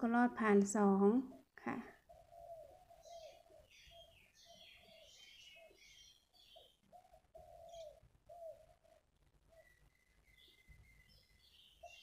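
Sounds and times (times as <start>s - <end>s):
high bird chirps: 9.6s - 12.0s.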